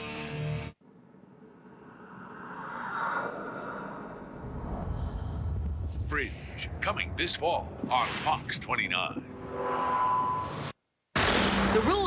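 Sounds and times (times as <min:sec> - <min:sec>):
rising whoosh: 0:01.4 - 0:08.5
deep rumble: 0:04.2 - 0:09.5.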